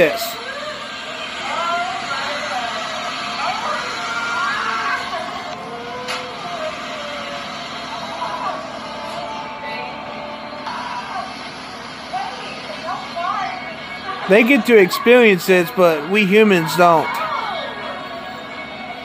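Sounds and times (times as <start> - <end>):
people exclaiming: 0.0 - 19.0.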